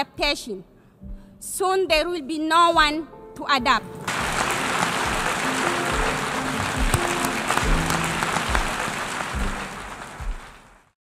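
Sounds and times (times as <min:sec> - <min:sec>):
background music with low beat: 0:00.1 - 0:10.9
audience applauding: 0:04.1 - 0:11.0.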